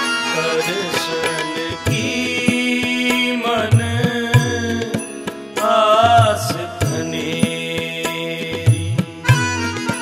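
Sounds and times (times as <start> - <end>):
held harmonium accompaniment: 0.0 - 10.0
man singing devotional hymn: 0.2 - 9.9.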